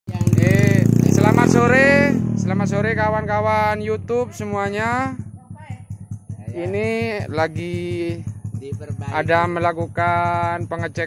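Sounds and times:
motorcycle engine idling: 0:00.1 - 0:11.0.

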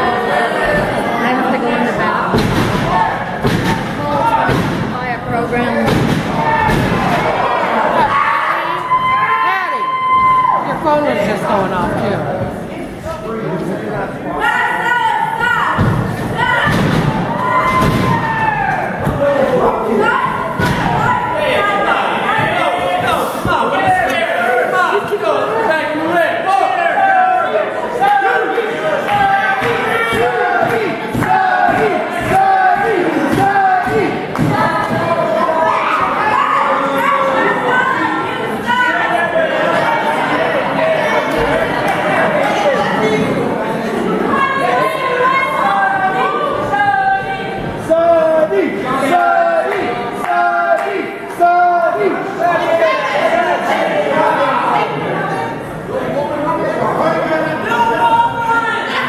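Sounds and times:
crowd shouting and yelling: 0:00.0 - 0:59.0.

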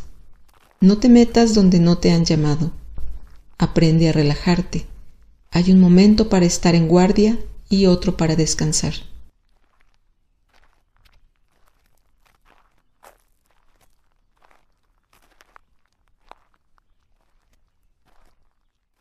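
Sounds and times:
faint crunches and clicks: 0:09.3 - 0:19.0.

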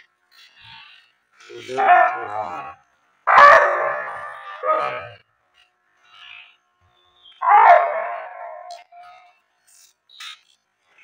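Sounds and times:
dog vocalizing loudly: 0:01.7 - 0:05.2, 0:07.4 - 0:09.1.

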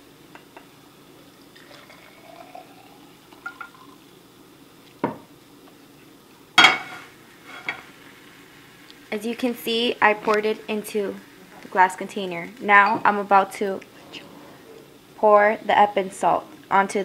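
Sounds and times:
water trickling into glass jar: 0:01.6 - 0:04.0.

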